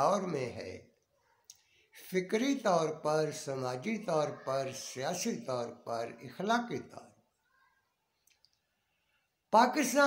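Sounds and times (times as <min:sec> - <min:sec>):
faint clicks: 0:01.4 - 0:01.7, 0:08.2 - 0:08.7.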